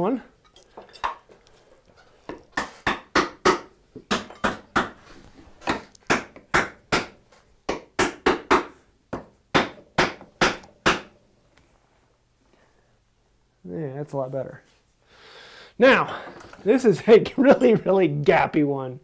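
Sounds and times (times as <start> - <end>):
wooden mallet knocking on wood: 2.6 - 5.0, 5.7 - 11.1.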